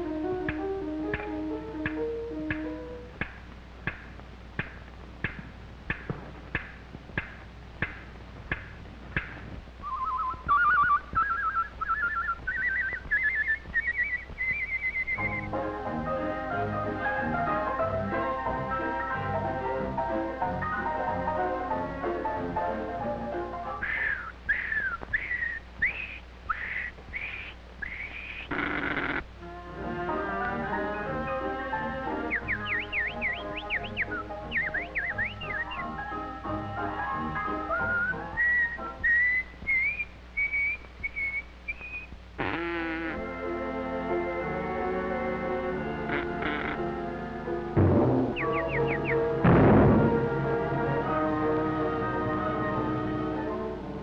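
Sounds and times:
whistled bird calls: 0:09.8 - 0:15.6, 0:23.8 - 0:29.1, 0:32.2 - 0:36.2, 0:37.2 - 0:42.2, 0:48.3 - 0:49.3
cartoon orchestral music: 0:15.2 - 0:23.8, 0:29.4 - 0:39.0, 0:42.5 - 0:54.0
short noisy crash: 0:47.8 - 0:48.4, 0:49.4 - 0:50.3.

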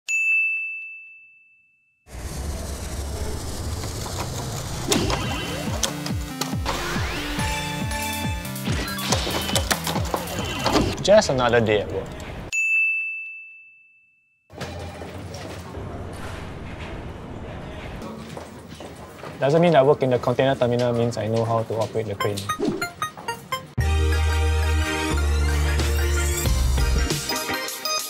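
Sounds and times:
high bell-like ding: 0:00.1 - 0:01.9, 0:12.5 - 0:14.3.

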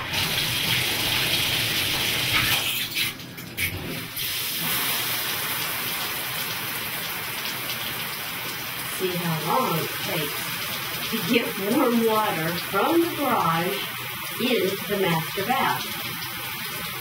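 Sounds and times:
shower spraying into bathtub: 0:00.0 - 0:17.0.

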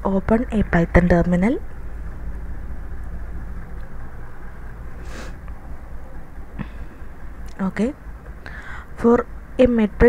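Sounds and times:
microphone hum and hiss: 0:00.0 - 0:10.0.

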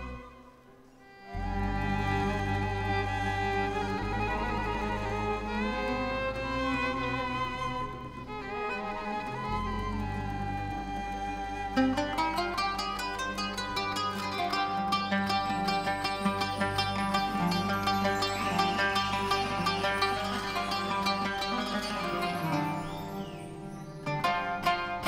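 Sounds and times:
plucked qanun notes: 0:00.0 - 0:25.0
violin slow sliding melody: 0:00.0 - 0:25.0.

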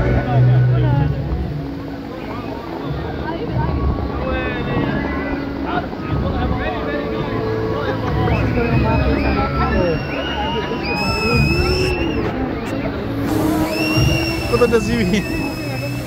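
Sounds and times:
crowd voices: 0:00.0 - 0:16.0
fountain water jets rushing: 0:00.0 - 0:16.0.

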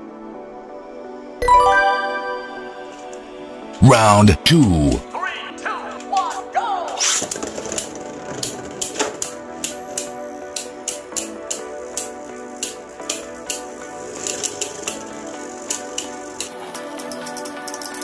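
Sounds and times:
background music: 0:00.0 - 0:18.0.

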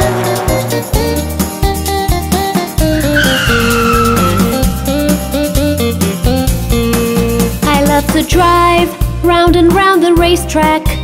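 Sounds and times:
cartoon tyre squeal: 0:02.8 - 0:05.0
upbeat children's music: 0:04.4 - 0:11.0.

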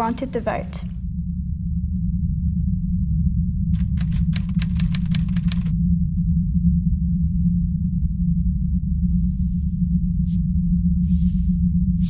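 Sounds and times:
steady low drone: 0:00.0 - 0:12.0
typewriter keys clacking: 0:03.8 - 0:05.7.

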